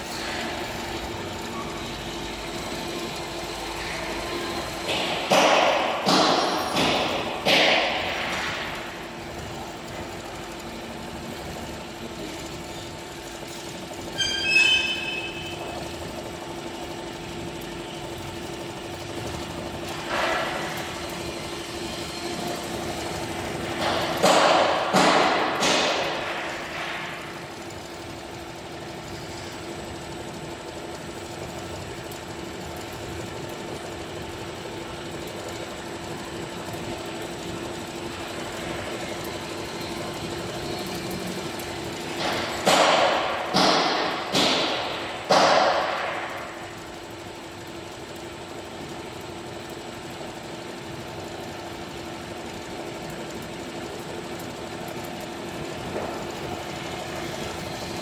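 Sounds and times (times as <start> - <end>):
noisy clatter: 0.0 - 58.0.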